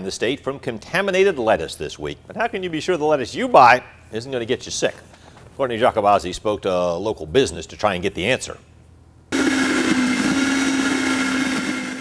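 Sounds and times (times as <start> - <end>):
blender motor whirring: 9.3 - 12.0.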